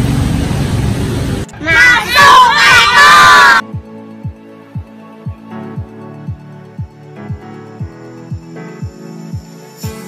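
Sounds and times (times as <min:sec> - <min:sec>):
person shouting: 0:01.6 - 0:03.6
quiet background music with beat: 0:03.6 - 0:10.0.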